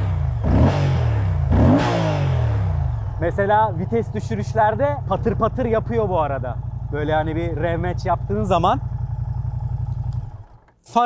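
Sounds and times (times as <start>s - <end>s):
motorcycle engine idling: 0.0s - 10.8s.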